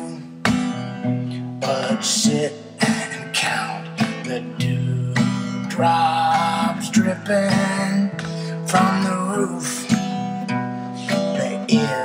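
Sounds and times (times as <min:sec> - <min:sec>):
guitar chords strummed: 0:00.0 - 0:12.0.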